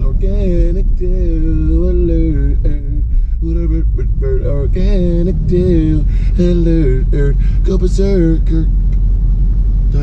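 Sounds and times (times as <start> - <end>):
car engine low rumble: 0.0 - 10.0.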